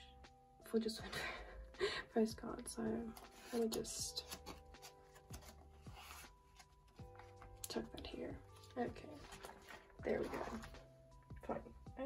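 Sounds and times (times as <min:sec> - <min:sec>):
faint background music: 0:00.0 - 0:12.0
postcard sliding into plastic sleeve: 0:03.2 - 0:06.8.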